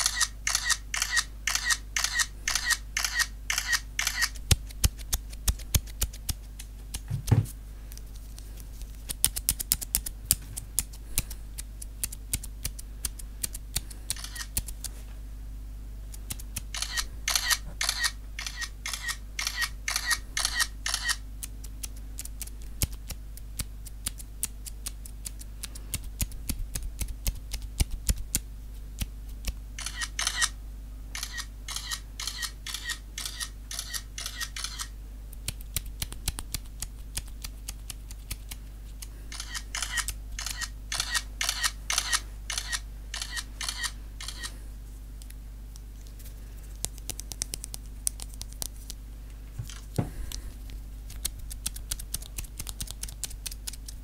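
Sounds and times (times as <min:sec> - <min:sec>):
small clicks: 0:00.0 - 0:07.0, 0:29.4 - 0:30.5, 0:31.2 - 0:44.6
low electrical hum: 0:00.0 - 0:54.0.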